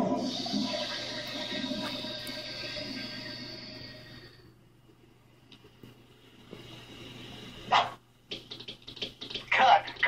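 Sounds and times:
cartoon music from television: 0.0s - 4.1s, 7.7s - 10.0s.

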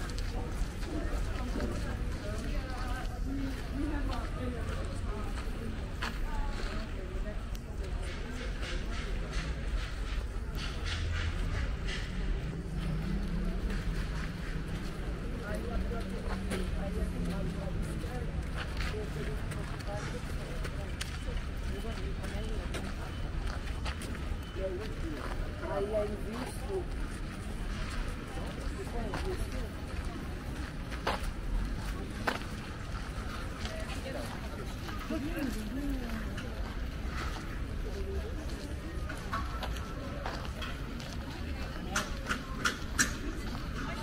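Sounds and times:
people talking: 0.0s - 44.0s
low outdoor rumble: 9.5s - 21.8s.

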